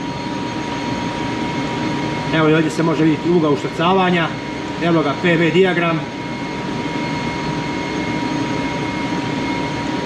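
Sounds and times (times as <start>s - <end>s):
constant whining tones: 0.0s - 10.0s
ship engine room machinery drone: 0.0s - 10.0s.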